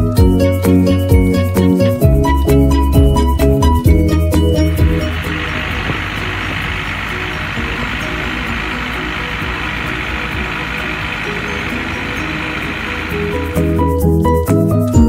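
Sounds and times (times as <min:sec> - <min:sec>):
music: 0:00.0 - 0:15.0
motorboat engine at speed: 0:03.1 - 0:14.3
churning water: 0:03.8 - 0:14.3
wind: 0:04.6 - 0:14.8.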